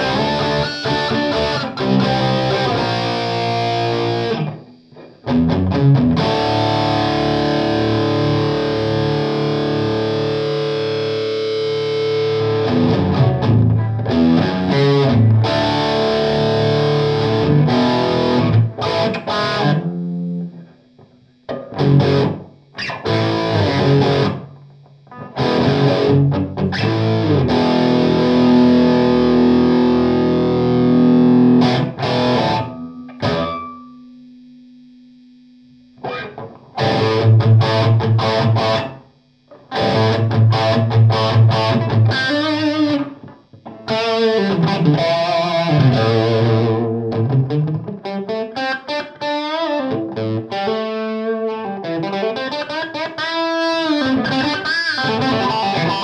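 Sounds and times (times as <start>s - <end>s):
distorted electric guitar chords: 0.0s - 56.0s.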